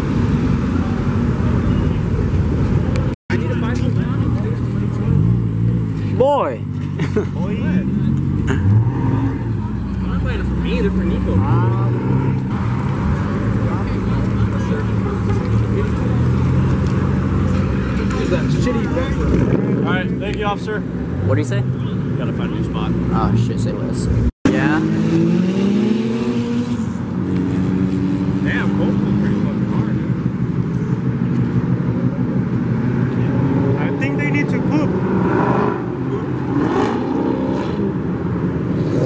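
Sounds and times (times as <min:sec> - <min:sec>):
car engines idling and pulling away: 0:00.0 - 0:39.0
people talking: 0:03.0 - 0:05.4, 0:06.1 - 0:08.6, 0:09.6 - 0:12.1, 0:13.2 - 0:24.9, 0:28.3 - 0:30.2, 0:33.1 - 0:34.9.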